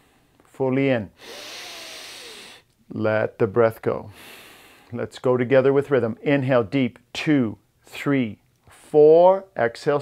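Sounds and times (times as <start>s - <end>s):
man inhaling deeply: 1.2s - 2.6s, 4.1s - 4.9s.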